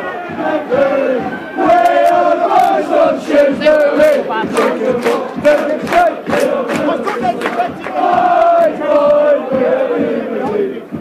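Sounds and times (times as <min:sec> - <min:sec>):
football crowd chanting: 0:00.0 - 0:11.0.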